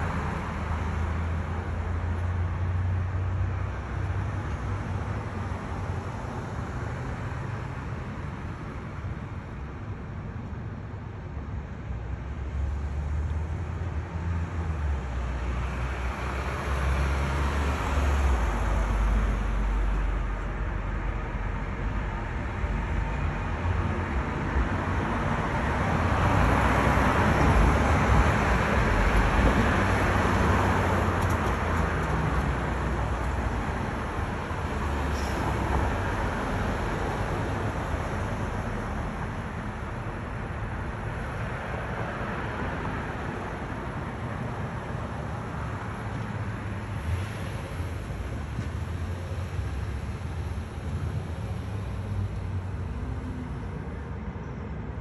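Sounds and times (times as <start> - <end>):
cars passing: 0.0 - 55.0
low traffic rumble: 0.0 - 55.0.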